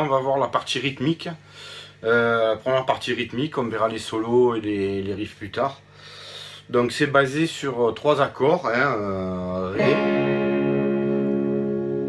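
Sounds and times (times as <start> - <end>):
electric guitar chord ringing: 9.6 - 12.0.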